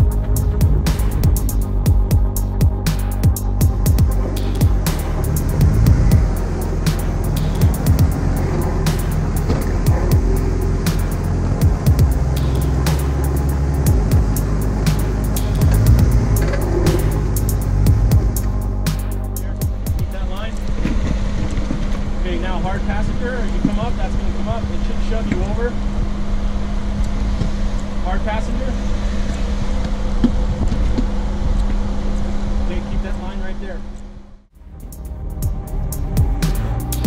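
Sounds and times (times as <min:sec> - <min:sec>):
background music: 0:00.0 - 0:23.6, 0:34.6 - 0:37.0
car engine running: 0:00.0 - 0:33.0, 0:34.6 - 0:37.0
voices: 0:04.1 - 0:20.7.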